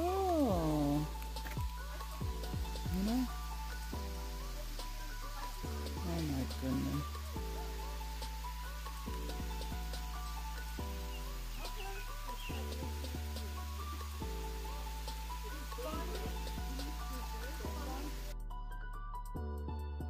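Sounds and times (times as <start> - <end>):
outdoor ambience hiss: 0.0 - 18.4
slow music with sustained chords: 0.0 - 20.0.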